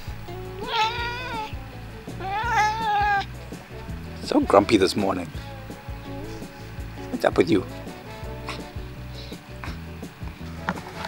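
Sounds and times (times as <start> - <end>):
cat meowing: 0.6 - 1.6, 2.2 - 3.3.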